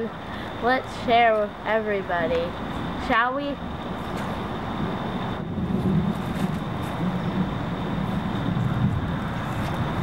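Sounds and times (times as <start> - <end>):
low rumble of distant traffic: 0.0 - 10.0.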